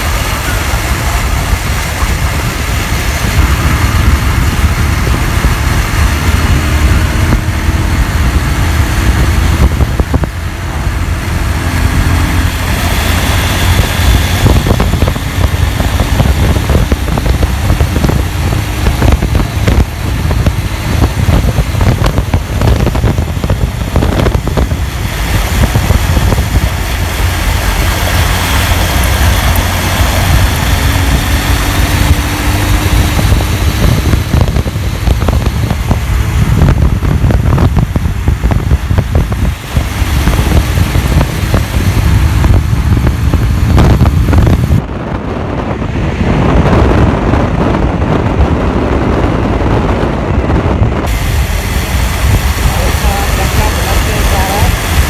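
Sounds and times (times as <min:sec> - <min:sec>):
motorcycle engine cruising: 0:00.0 - 0:55.0
wind on microphone: 0:00.0 - 0:55.0.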